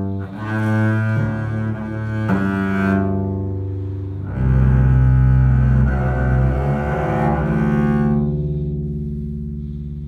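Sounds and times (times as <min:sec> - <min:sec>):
bowed double bass: 0:00.0 - 0:10.0.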